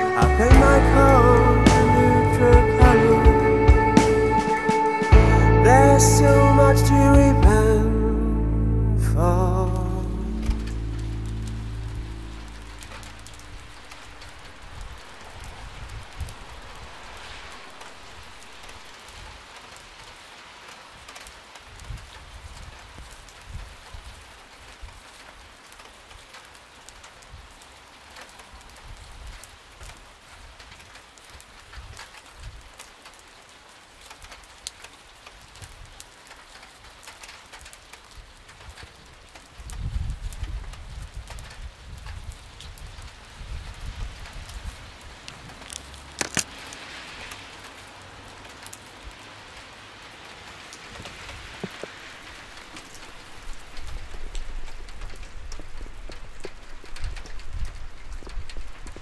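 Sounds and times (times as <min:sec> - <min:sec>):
low song notes: 0:00.0 - 0:14.6
rain on wet street: 0:00.0 - 0:59.0.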